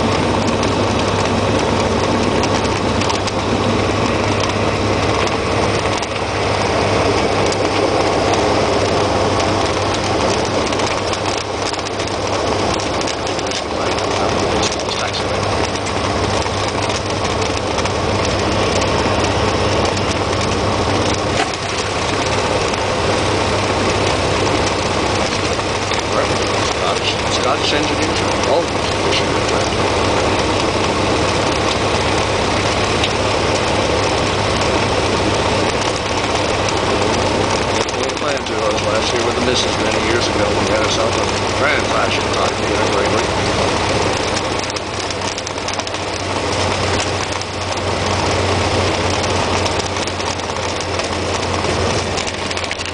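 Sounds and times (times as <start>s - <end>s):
light aircraft engine and propeller: 0.0s - 52.9s.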